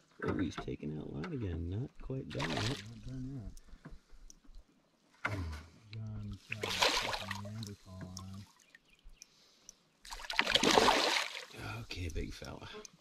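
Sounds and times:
fish splashing in water: 0:02.4 - 0:02.8, 0:06.5 - 0:07.6, 0:10.0 - 0:11.6.

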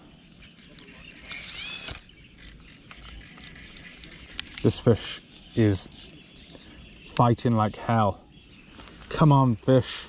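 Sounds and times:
light reel clicks: 0:00.3 - 0:07.3
fishing reel drag buzzing: 0:00.4 - 0:06.3.

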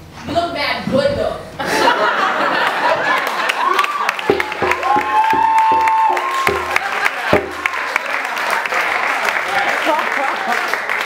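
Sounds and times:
audience applause: 0:02.6 - 0:11.0
person cheering: 0:03.5 - 0:08.0
heavy thumps: 0:04.3 - 0:07.8.

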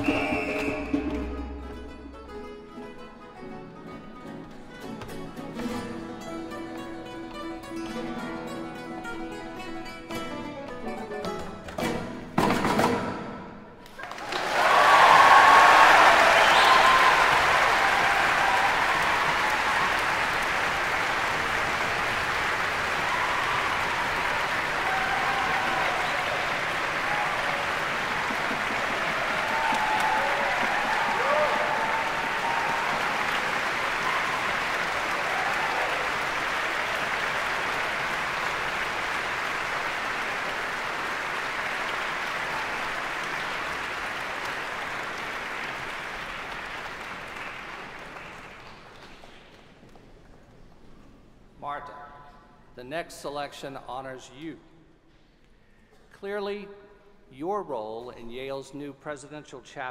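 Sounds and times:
audience applauding: 0:00.0 - 0:01.0, 0:13.8 - 0:50.5.

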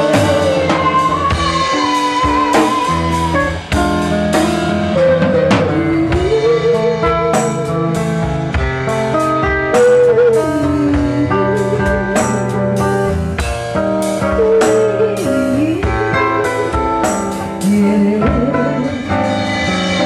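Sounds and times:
sliding melody line: 0:00.0 - 0:13.3
acoustic-electric guitar chords: 0:00.0 - 0:20.0
drum kit steady beat: 0:00.0 - 0:20.0.

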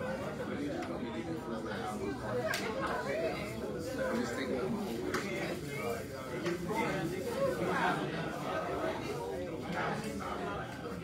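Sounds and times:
overlapping conversations: 0:00.2 - 0:11.0.

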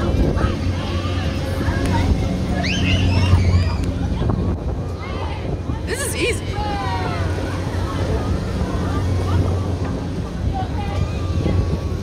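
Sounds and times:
faint voices: 0:00.0 - 0:12.0
wind buffeting microphone: 0:00.0 - 0:12.0.

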